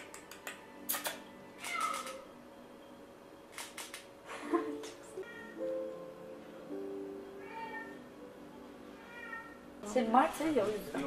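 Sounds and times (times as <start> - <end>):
sharp click: 0.0 - 2.2, 3.6 - 4.1
cat meowing: 1.6 - 2.2, 5.2 - 5.6, 7.4 - 8.0, 9.0 - 9.7.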